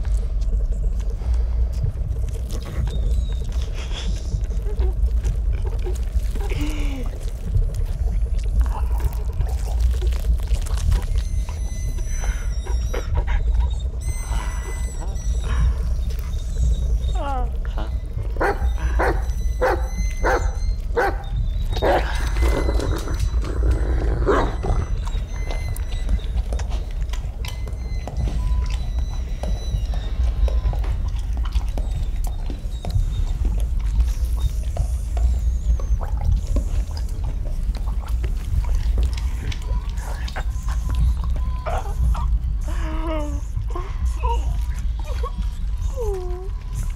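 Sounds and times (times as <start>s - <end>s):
low rumbling drone: 0.0s - 46.9s
muffled animal-like cries: 11.0s - 46.9s.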